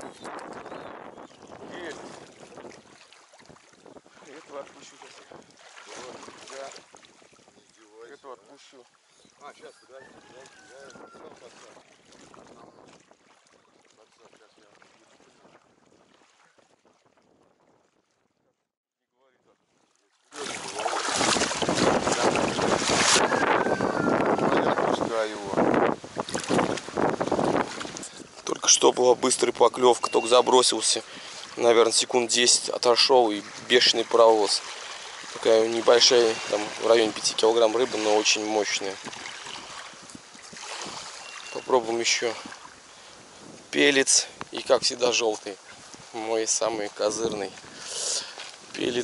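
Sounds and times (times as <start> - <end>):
wind buffeting microphone: 0.0 - 7.7, 21.0 - 28.6, 38.9 - 41.2, 42.3 - 45.1
waves lapping against bank: 0.0 - 9.5, 10.4 - 17.4, 19.5 - 49.0
water splashing: 1.3 - 9.1, 10.4 - 17.4, 19.5 - 49.0.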